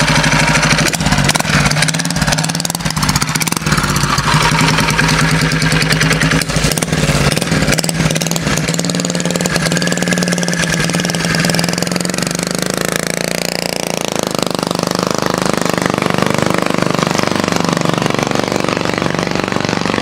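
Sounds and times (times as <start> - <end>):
small engine running and revving: 0.0 - 20.0.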